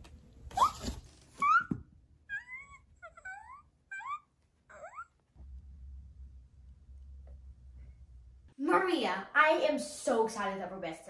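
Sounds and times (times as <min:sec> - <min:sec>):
cartoon mouse squeaks: 0:00.6 - 0:05.2.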